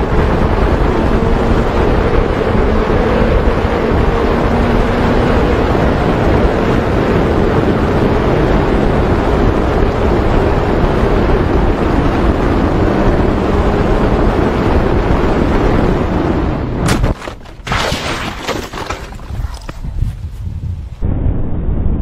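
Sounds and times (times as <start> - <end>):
wind rushing over microphone: 0.0 - 22.0.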